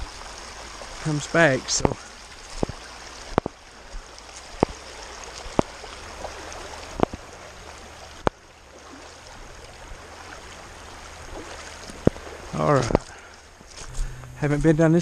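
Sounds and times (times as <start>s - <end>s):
footsteps wading in rubber boots: 0.0s - 14.9s
creek water over rocks: 0.0s - 15.0s.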